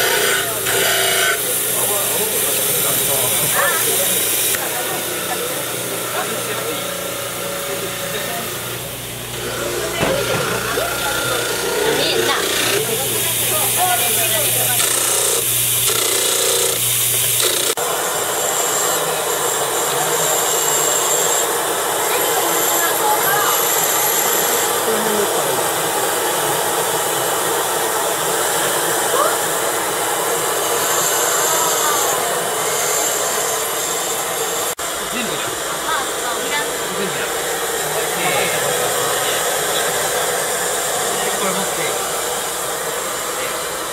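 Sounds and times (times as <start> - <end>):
grinding wheel cutting plaster: 0.0 - 43.9
high-pitched whine of grinding handpiece: 0.0 - 43.9.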